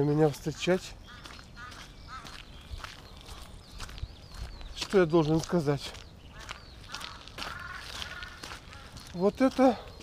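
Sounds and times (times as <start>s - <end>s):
footsteps on wet dirt: 0.0s - 10.0s
drawn-out animal call: 6.3s - 9.1s.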